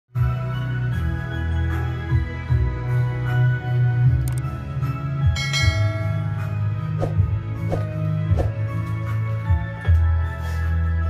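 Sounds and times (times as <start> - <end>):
background music: 0.1 - 11.0
bell chime: 5.3 - 6.6.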